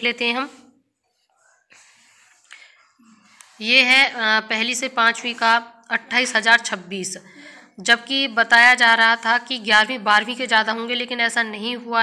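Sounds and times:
woman breathing: 0:01.4 - 0:03.6, 0:07.2 - 0:07.8.

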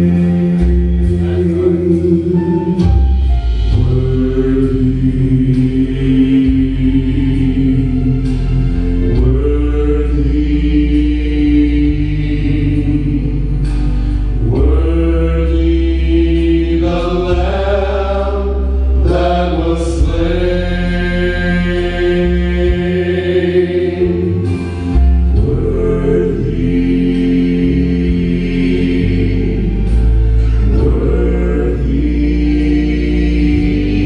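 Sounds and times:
bass accompaniment: 0:00.0 - 0:34.0
male vocal trio singing: 0:00.0 - 0:34.0.

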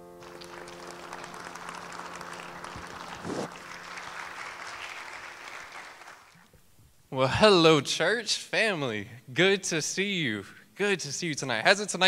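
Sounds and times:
held music chord: 0:00.0 - 0:04.8
audience applauding: 0:00.0 - 0:06.4.

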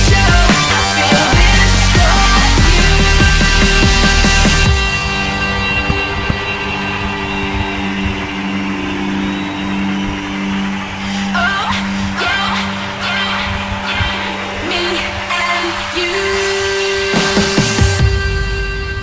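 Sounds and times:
electronic soundtrack music: 0:00.0 - 0:19.0.

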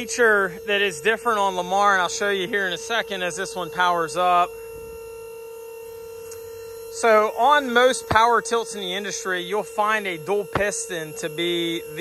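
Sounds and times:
hydraulic pump whining: 0:00.0 - 0:12.0.

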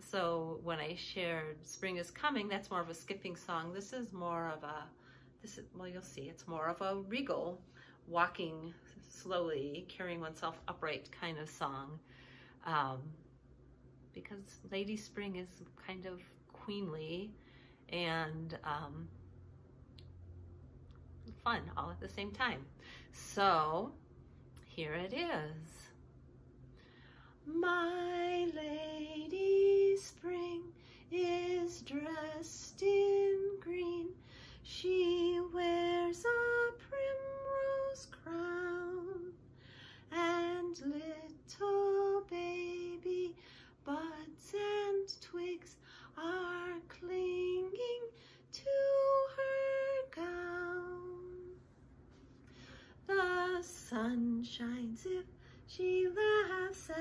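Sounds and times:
woman singing unaccompanied: 0:27.4 - 0:39.4, 0:40.1 - 0:51.6, 0:53.0 - 0:57.0.

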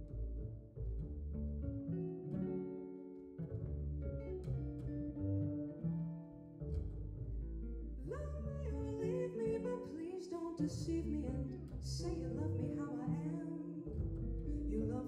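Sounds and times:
guitar chords: 0:00.0 - 0:15.0
plucked upright bass: 0:00.0 - 0:15.0
woman singing: 0:08.0 - 0:15.0.

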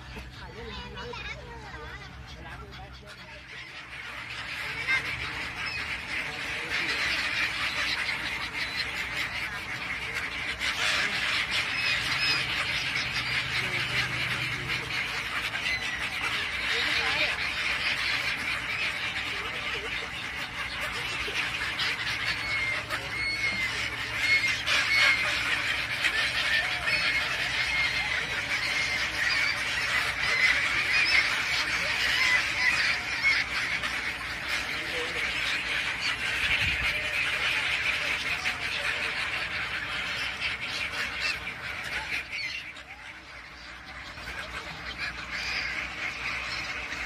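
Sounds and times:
gulls calling: 0:00.0 - 0:47.0.

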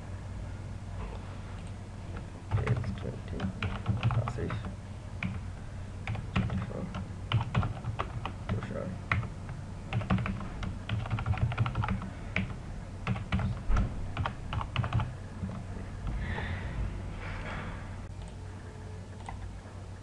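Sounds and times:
steady low hum: 0:00.0 - 0:20.0
typing on computer keyboard: 0:02.5 - 0:05.4, 0:06.0 - 0:09.3, 0:09.9 - 0:15.7.

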